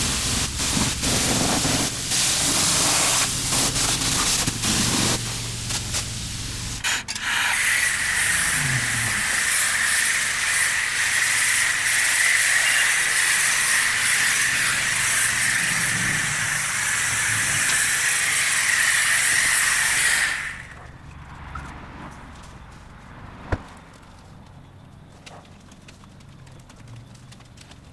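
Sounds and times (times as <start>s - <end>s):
pressure washer spraying hiss: 0.0s - 20.8s.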